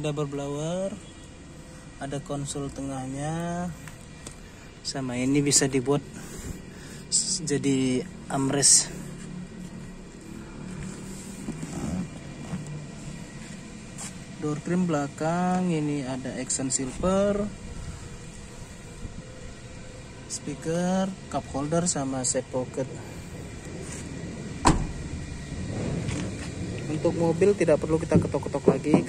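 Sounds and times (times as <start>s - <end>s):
vehicle humming: 0.0s - 29.0s
car door closing thud: 24.6s - 25.1s.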